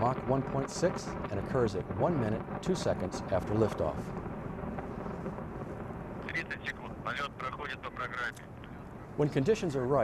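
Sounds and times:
sharp crackling: 0.0 - 9.0
distant rocket engine rumble: 0.0 - 10.0.

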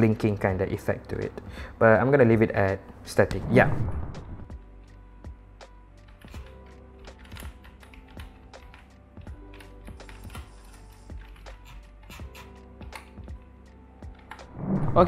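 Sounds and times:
background music: 0.0 - 15.0.

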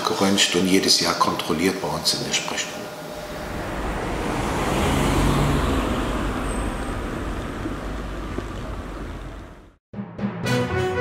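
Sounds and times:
passing vehicle rush: 2.8 - 9.8.

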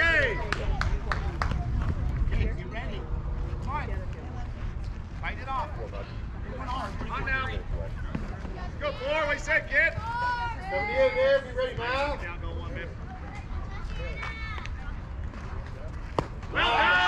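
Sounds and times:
people shouting and chatting: 0.0 - 17.0.

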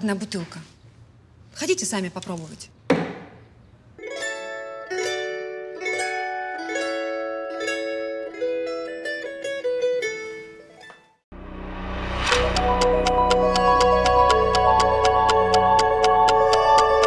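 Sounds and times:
plucked string melody: 4.0 - 11.1, 12.3 - 17.0
background music: 11.4 - 17.0.

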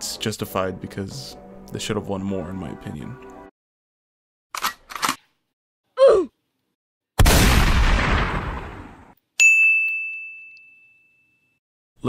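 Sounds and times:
bright ding: 9.4 - 11.6.

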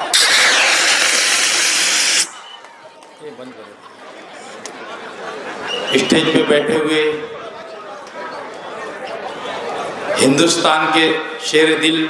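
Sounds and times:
confetti cannon gas hiss: 0.0 - 2.4.

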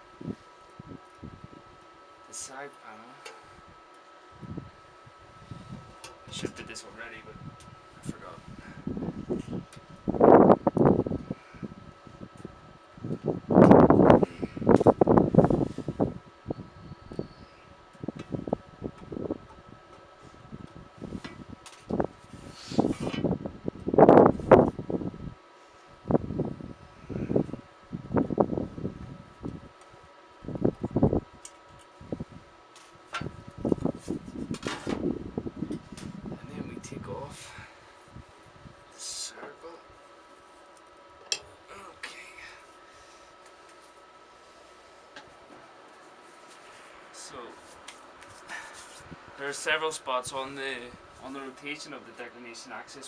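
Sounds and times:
faint steady hum: 0.0 - 53.0.

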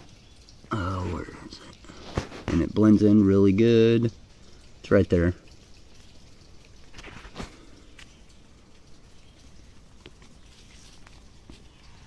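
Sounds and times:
soft clicks of dirt and stone: 5.4 - 12.0
soil scraping and crumbling: 6.9 - 8.1.

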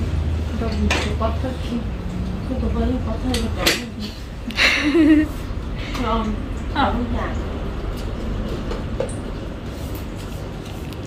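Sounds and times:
low rumbling machine noise: 0.0 - 11.0.

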